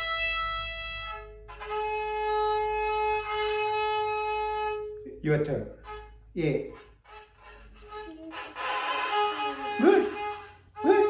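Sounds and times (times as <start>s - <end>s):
violin bow noise: 0.0s - 11.0s
violin sustained note: 0.0s - 11.0s.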